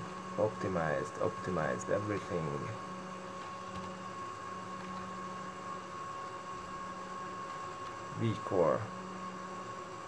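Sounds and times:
computer fans whirring: 0:00.0 - 0:10.0.

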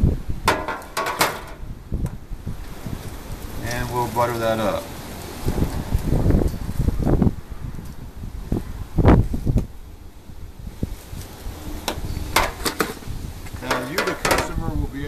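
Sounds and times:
metal lid clattering: 0:00.5 - 0:01.6, 0:13.7 - 0:14.6
dull knocks and scrapes: 0:11.9 - 0:14.6.

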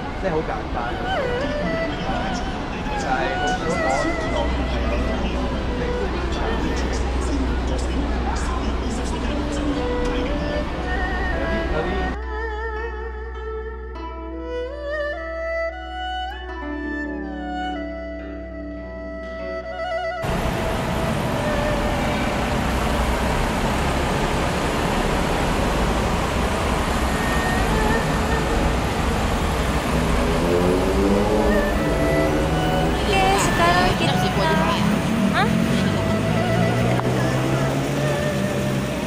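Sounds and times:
people's voices: 0:00.0 - 0:12.2, 0:20.6 - 0:39.0
street traffic rumble: 0:00.0 - 0:12.2, 0:20.2 - 0:39.0.

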